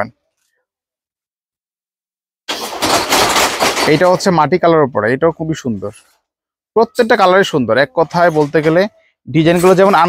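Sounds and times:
loud fabric rustling: 2.5s - 4.3s.

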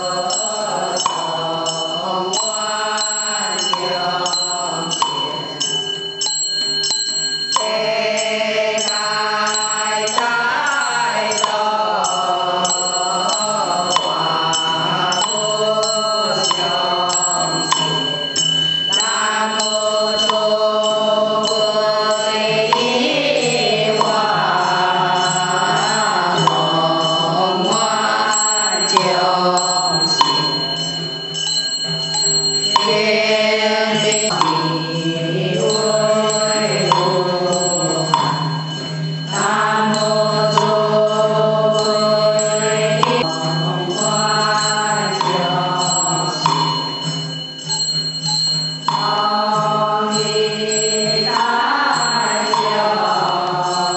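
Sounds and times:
congregation chanting: 0.0s - 5.7s, 7.6s - 18.3s, 18.9s - 30.8s, 32.7s - 38.6s, 39.3s - 47.0s, 48.8s - 53.9s.

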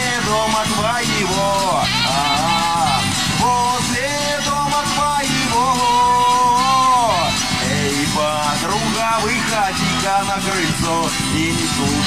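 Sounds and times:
acoustic guitar strumming: 0.0s - 12.0s
rock band playing: 0.0s - 12.0s
wind instrument melody: 0.0s - 12.0s.

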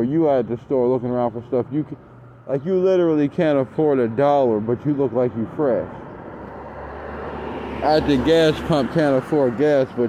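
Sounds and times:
motor vehicle approaching: 0.0s - 10.0s.

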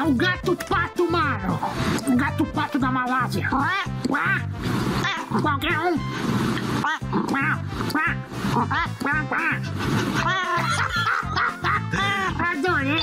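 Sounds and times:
background music with a beat: 0.0s - 13.0s
cat making quacking calls: 4.0s - 4.4s, 6.8s - 10.6s.

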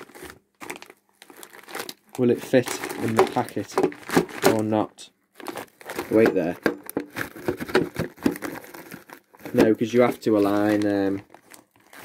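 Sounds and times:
plastic packet crinkling: 0.0s - 12.0s.

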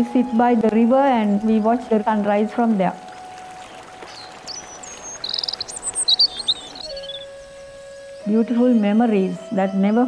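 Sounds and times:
birds chirping in trills: 1.1s - 10.0s.

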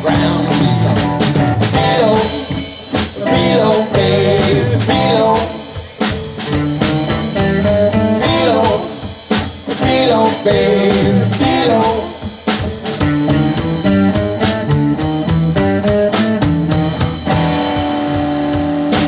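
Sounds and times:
drum beat: 0.0s - 19.0s
electric bass: 0.0s - 19.0s
electric guitar: 0.0s - 19.0s.

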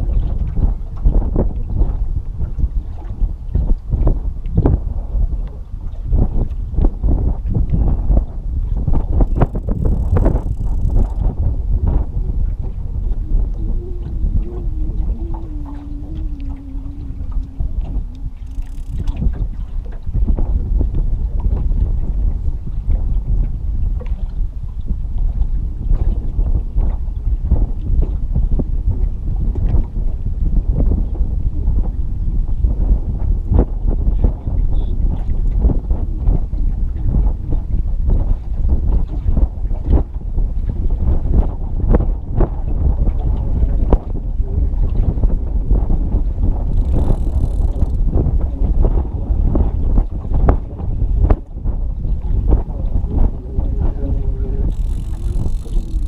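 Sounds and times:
wind buffeting microphone: 0.0s - 56.0s
river current slapping boat hull: 8.9s - 22.2s, 42.4s - 54.0s, 54.6s - 56.0s.

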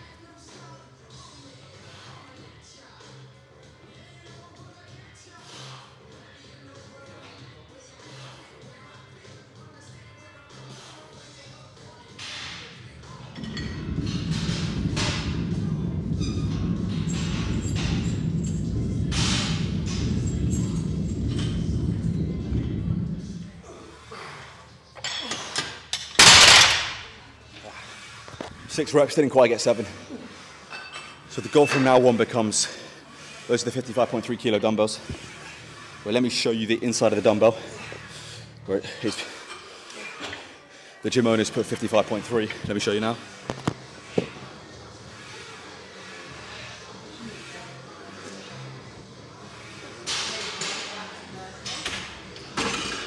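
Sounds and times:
loud low rumble: 12.8s - 24.6s.

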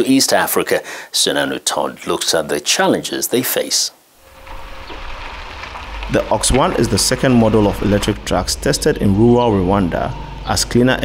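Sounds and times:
tyres rolling on dirt: 4.2s - 11.0s.

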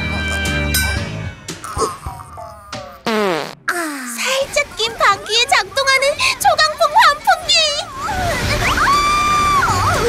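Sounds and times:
cartoon fart sound effect: 1.6s - 3.8s.

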